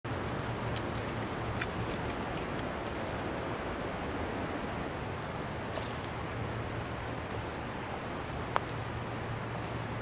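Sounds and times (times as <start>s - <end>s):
steady background noise: 0.1s - 10.0s
dog harness jingling: 0.2s - 4.9s.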